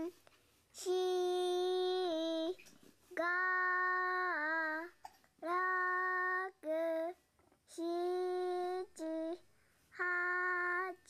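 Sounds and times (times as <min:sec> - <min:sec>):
child singing long notes: 0:00.8 - 0:02.6, 0:03.2 - 0:09.4, 0:10.0 - 0:11.0.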